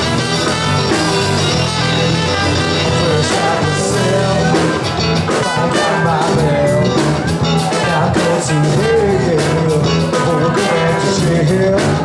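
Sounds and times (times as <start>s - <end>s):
bass guitar: 0.0s - 12.0s
bending lead guitar line: 0.0s - 12.0s
drum kit with cymbals: 0.0s - 12.0s
electric guitars: 0.0s - 12.0s.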